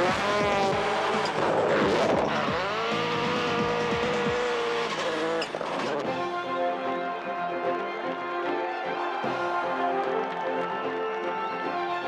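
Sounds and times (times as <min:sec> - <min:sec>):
tyre noise: 0:00.0 - 0:06.2
rally car engine revving: 0:00.0 - 0:06.6
music: 0:00.0 - 0:12.0.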